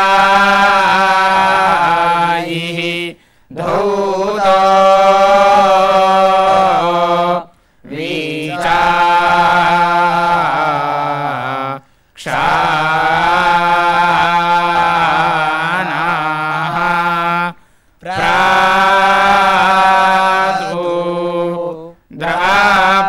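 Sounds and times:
men chanting a hymn: 0.0s - 23.0s.

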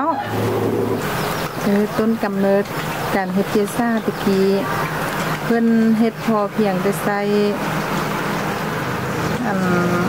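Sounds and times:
mechanical motor hum: 0.0s - 10.0s.

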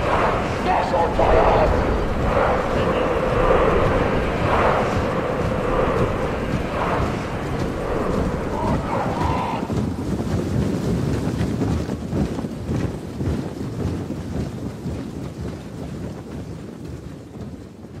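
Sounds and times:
many heavy footsteps tramping: 0.0s - 18.0s.

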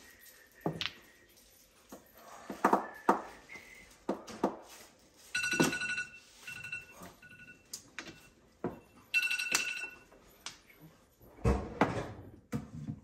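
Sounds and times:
electronic ringing tone: 5.3s - 8.4s, 9.1s - 10.1s.

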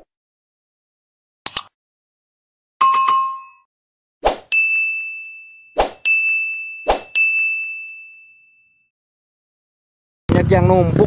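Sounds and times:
bright bell-like ding: 4.5s - 8.8s.

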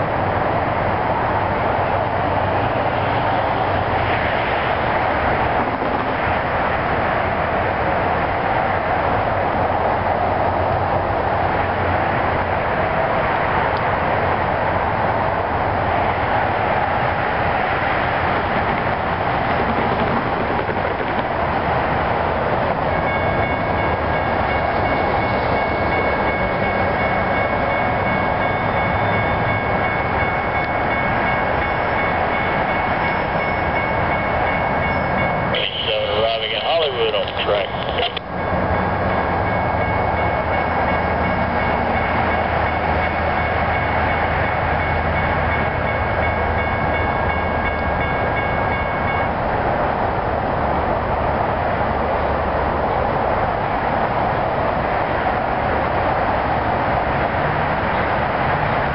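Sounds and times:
diesel train rumbling: 0.0s - 58.9s.

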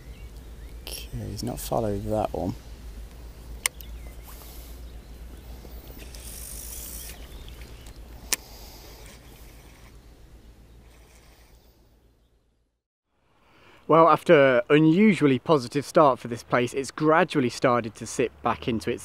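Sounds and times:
sharp clicks: 3.0s - 3.9s.

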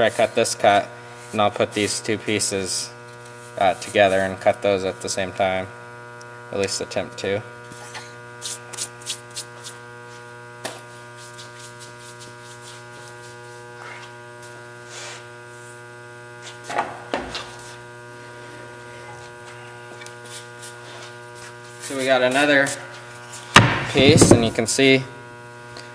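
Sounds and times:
table saw motor humming: 12.8s - 25.9s.

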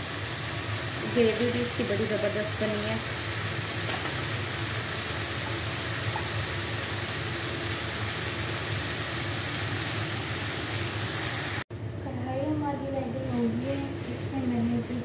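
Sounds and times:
curry sizzling in a pan: 0.0s - 11.6s.

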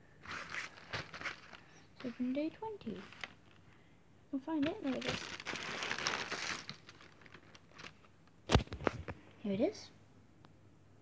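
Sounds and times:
rustling and scraping: 0.2s - 3.7s.

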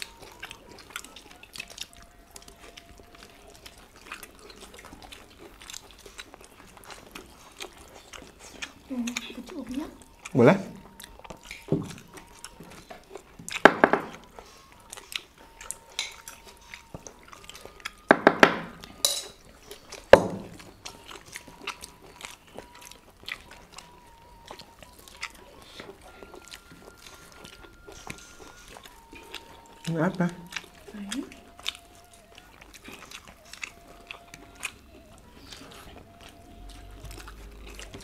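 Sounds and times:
chewing: 0.0s - 38.0s
dishes and spoons clinking: 18.1s - 19.5s.

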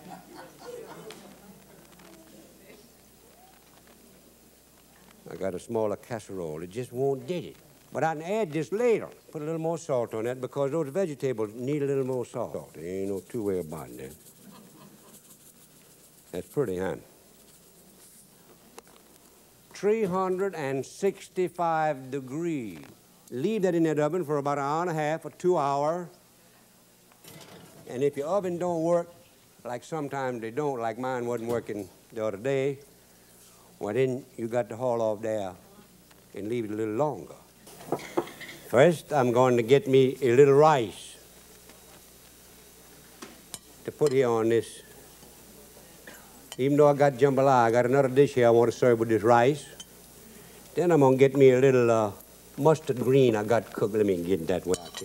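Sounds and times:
salt patter on vegetables: 12.0s - 19.4s.

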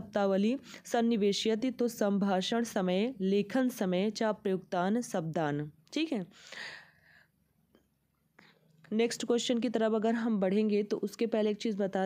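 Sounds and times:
woman speaking: 0.0s - 6.4s, 8.9s - 12.0s
woman taking a breath: 6.3s - 7.4s.

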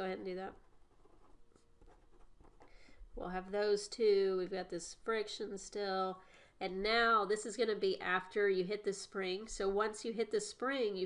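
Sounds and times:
pen scratching on paper: 0.0s - 2.8s.

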